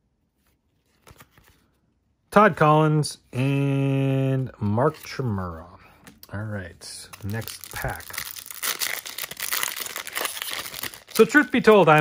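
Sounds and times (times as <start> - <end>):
plastic wrapper tearing and crinkling: 7.0 - 12.0.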